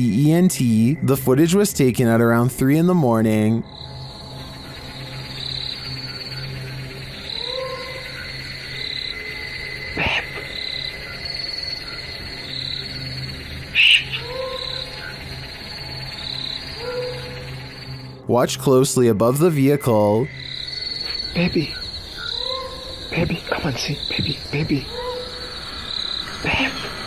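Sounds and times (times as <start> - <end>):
frogs and insects calling: 0.0 - 27.0
steady high tone: 25.3 - 27.0.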